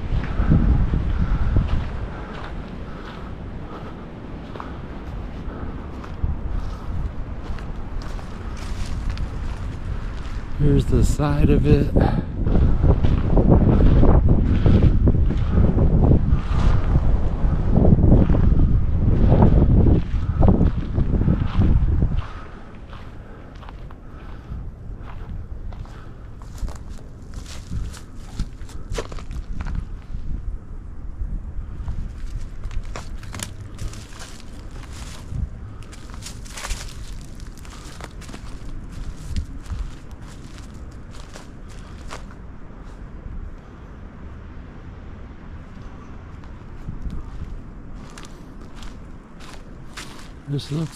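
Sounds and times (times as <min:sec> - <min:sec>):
footsteps on woodland ground: 0:00.0 - 0:17.1, 0:18.2 - 0:30.3, 0:31.6 - 0:43.1, 0:46.3 - 0:50.9.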